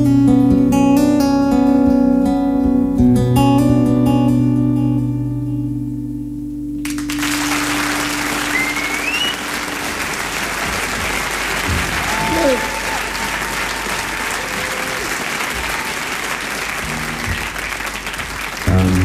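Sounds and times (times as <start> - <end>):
audience applauding: 6.8 - 19.0
rising whistle: 8.3 - 9.6
person cheering: 11.7 - 16.1.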